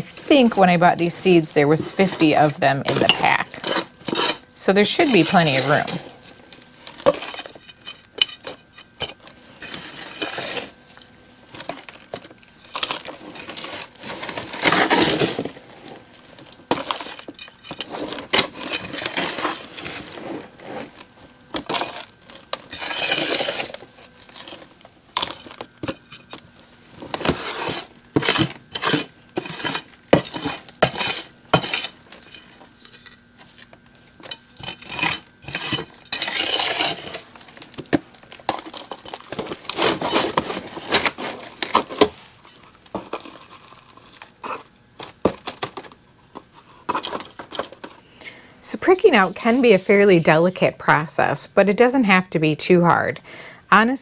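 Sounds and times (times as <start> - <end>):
soil scraping and rustling: 0.0 - 10.8, 12.6 - 37.7.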